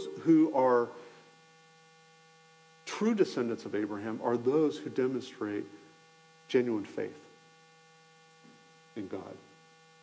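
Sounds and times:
faint electrical hum: 0.0 - 10.0
man speaking: 2.9 - 5.8, 6.5 - 7.3, 8.9 - 9.5.

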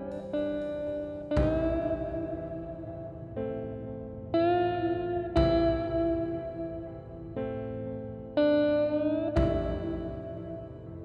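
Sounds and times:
electric guitar chords with reverb: 0.0 - 11.0.

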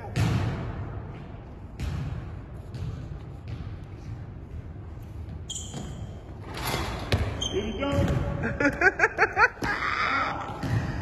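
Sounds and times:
basketball bouncing on hardwood floor: 1.7 - 6.0, 7.1 - 8.2.

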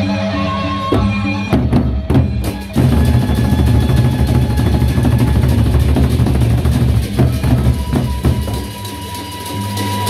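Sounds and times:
barrel drums rolling: 1.5 - 9.5
cymbals rattling: 2.4 - 10.0.

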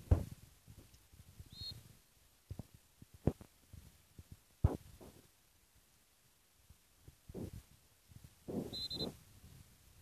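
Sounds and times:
short high chirp: 8.7 - 9.2.

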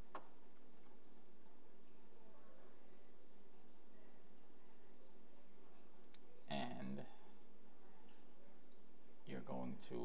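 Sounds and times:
room tone and microphone hiss: 0.0 - 10.0.

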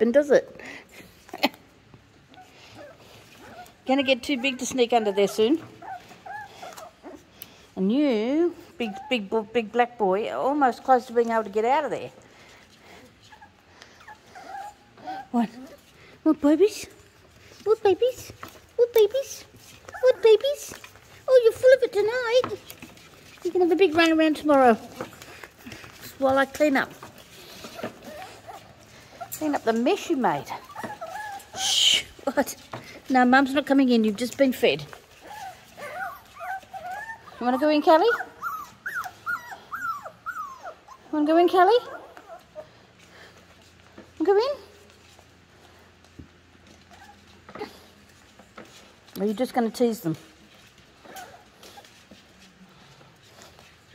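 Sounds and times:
puppies whimpering: 2.3 - 7.3, 12.9 - 15.9, 19.6 - 32.2, 35.0 - 42.8.

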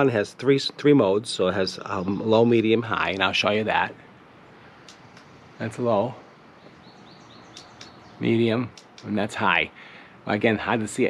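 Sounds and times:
faint birds chirping: 0.0 - 11.0.

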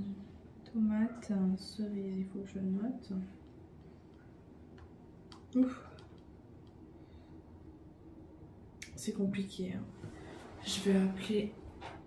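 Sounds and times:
faint low hum: 0.0 - 12.0.

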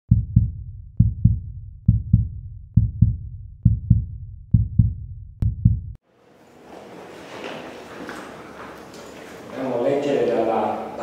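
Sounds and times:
heartbeat double thump: 0.1 - 6.0.

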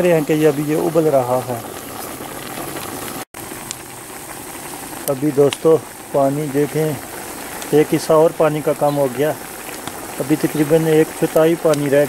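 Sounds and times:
pot of water boiling hard: 0.0 - 12.0.

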